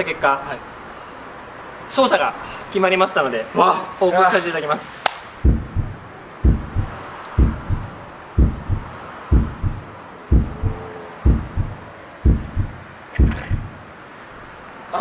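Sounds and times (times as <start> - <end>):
heartbeat thumps: 5.4 - 13.9.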